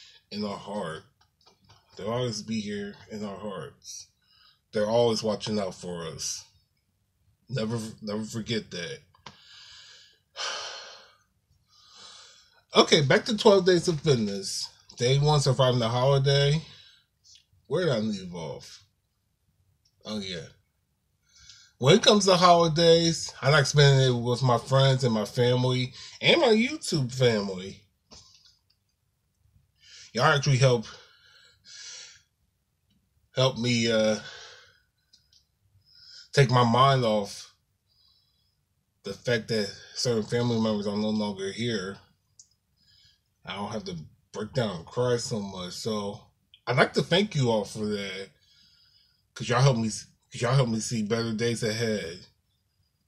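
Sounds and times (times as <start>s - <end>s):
man breathing heavily: 9.4s - 12.6s.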